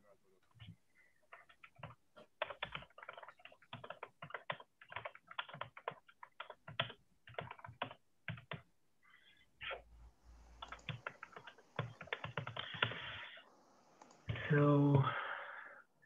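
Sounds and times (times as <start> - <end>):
keyboard typing clicks: 1.3 - 8.6, 10.5 - 13.1, 14.0 - 14.4.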